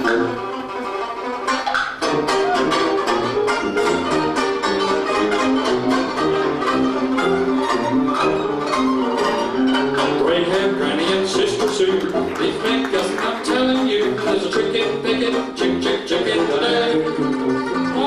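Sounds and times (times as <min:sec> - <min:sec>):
banjo strumming chords: 0:00.0 - 0:18.0.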